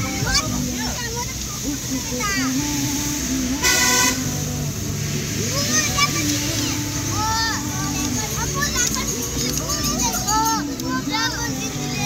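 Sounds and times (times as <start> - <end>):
car horn honk: 3.6 - 4.4.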